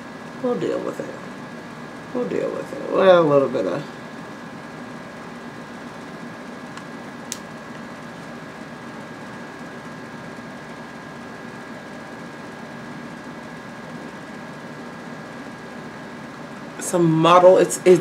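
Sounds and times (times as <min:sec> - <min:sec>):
room noise hum: 0:00.0 - 0:18.0.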